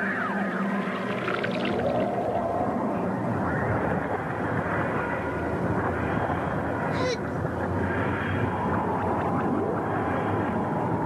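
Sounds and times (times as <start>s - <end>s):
faint wavering gliding tones: 0.0s - 11.0s.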